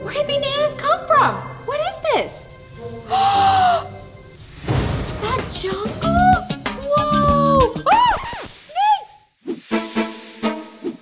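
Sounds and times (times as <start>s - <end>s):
background music with hits: 4.3s - 7.5s
woman screaming: 6.8s - 9.2s
snake hiss sound effect: 8.2s - 11.0s.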